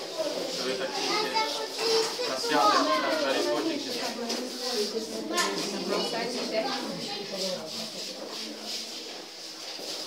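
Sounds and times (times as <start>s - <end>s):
group of people talking: 0.0s - 10.0s.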